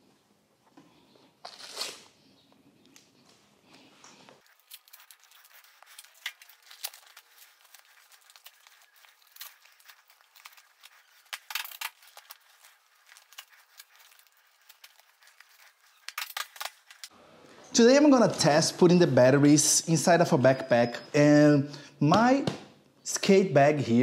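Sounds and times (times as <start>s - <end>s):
hook-and-loop strap ripping: 1.4s - 2.1s, 4.5s - 17.1s
gear rustling: 4.4s - 17.1s.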